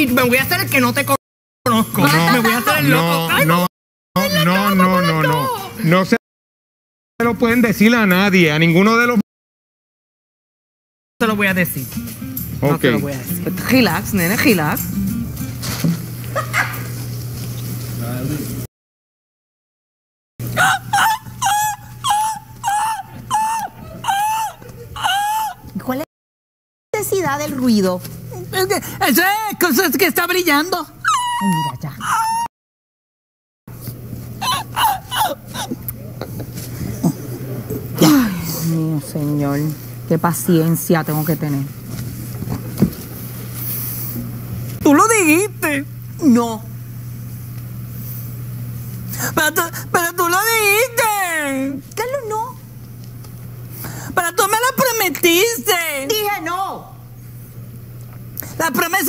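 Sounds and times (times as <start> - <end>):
dog-like whimpering cries: 20.4 - 25.9, 31.0 - 32.5, 34.4 - 35.9.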